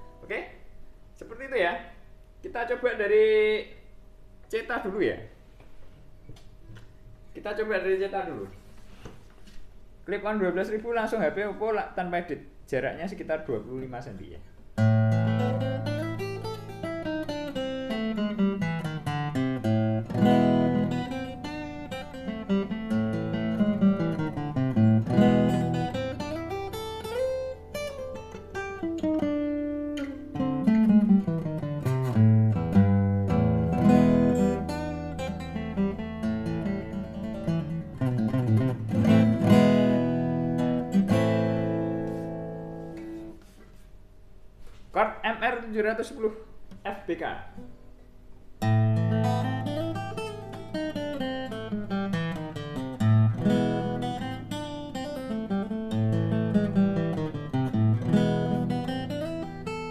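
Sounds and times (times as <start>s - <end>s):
fingerpicked acoustic guitar: 14.7s - 43.8s, 47.6s - 59.9s.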